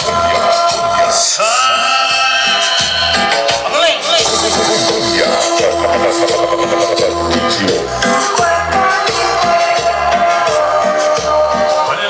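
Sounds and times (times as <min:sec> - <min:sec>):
loud dance music: 0:00.0 - 0:12.0
pulsing bass beat: 0:02.5 - 0:11.7.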